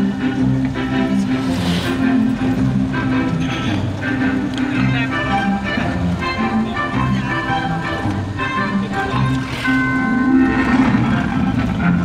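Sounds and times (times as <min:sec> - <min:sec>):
car running on road: 0:00.0 - 0:12.0
music with held melody notes: 0:00.0 - 0:12.0.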